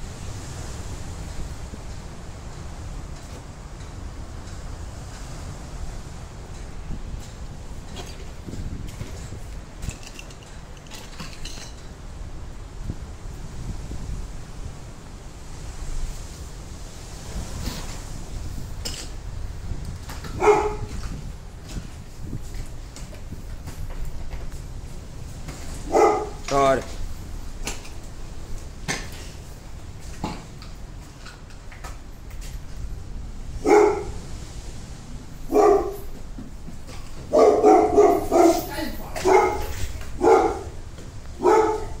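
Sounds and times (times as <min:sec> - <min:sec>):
dog bark: 0:20.4 - 0:21.0, 0:25.8 - 0:26.4, 0:33.6 - 0:34.2, 0:35.5 - 0:36.1, 0:37.3 - 0:40.8, 0:41.4 - 0:42.0.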